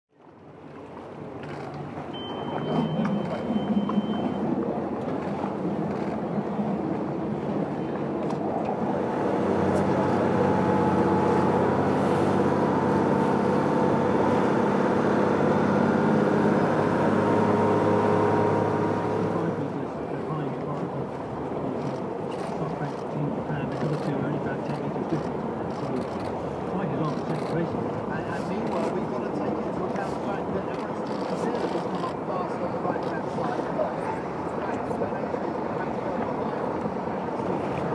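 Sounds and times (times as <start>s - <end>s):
water and wind rush: 0.1s - 37.9s
outboard motors running: 0.2s - 37.9s
brief high tone: 2.1s - 4.6s.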